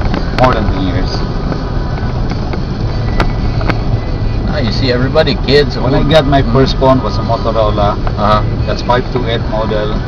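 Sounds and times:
car road noise rumble: 0.0s - 10.0s.

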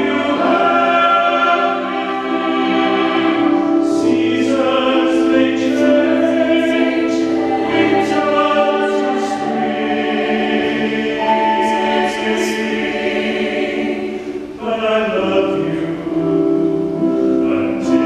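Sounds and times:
mixed choir singing: 0.0s - 18.0s.

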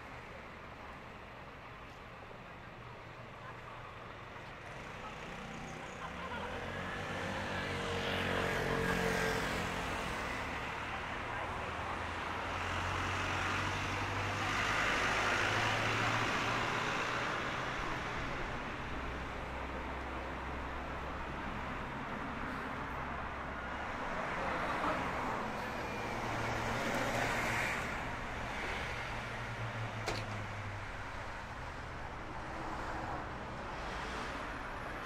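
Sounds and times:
low road hum: 0.0s - 35.0s.

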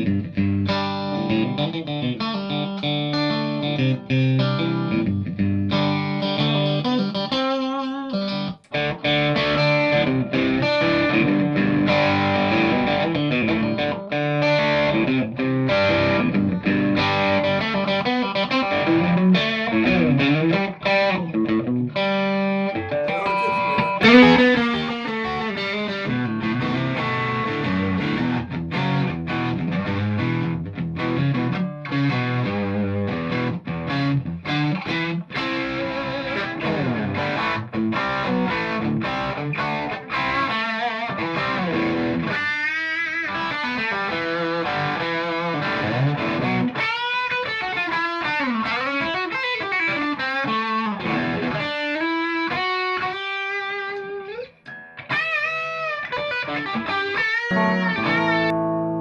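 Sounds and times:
overdriven electric guitar: 0.0s - 59.0s.

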